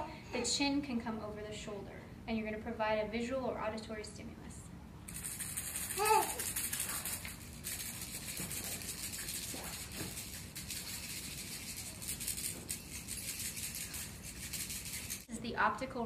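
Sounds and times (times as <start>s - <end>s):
toy rattle shaken: 5.1s - 15.3s.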